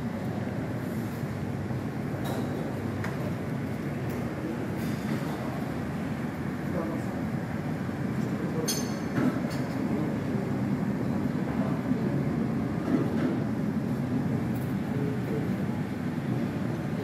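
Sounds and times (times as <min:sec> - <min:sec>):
low rumble of hall background noise: 0:00.0 - 0:17.0
faint light clink: 0:08.6 - 0:09.8.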